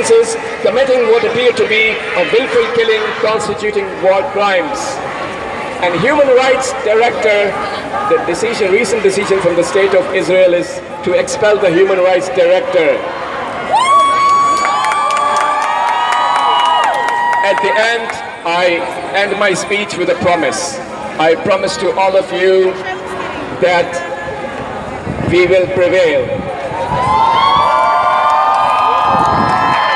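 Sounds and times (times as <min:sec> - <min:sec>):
crowd shouting and cheering: 0:00.0 - 0:29.9.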